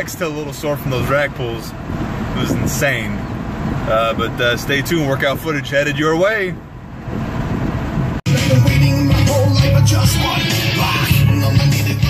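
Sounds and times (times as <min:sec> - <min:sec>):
car cabin rumble: 0:00.0 - 0:12.0
bass-heavy music from car stereo: 0:08.0 - 0:12.0.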